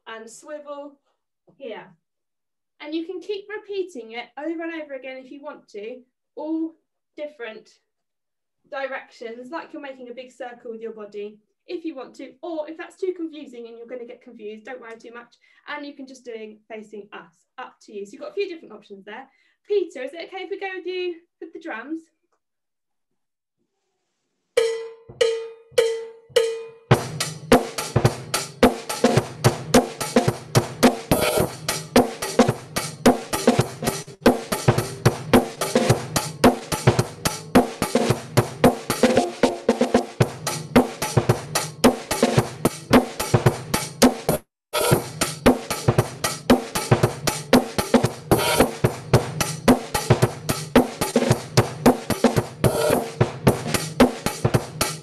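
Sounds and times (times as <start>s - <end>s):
drum count-in strokes: 24.6s - 55.0s
drum kit rhythm: 24.6s - 55.0s.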